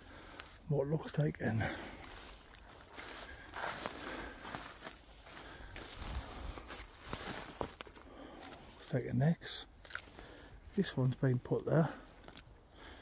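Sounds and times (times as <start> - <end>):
footsteps on dry leaves and twigs: 0.0 - 9.0, 9.6 - 13.0.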